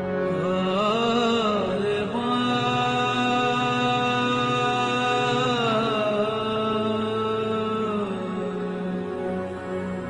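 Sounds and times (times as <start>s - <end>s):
devotional music with reedy chords: 0.0s - 10.0s.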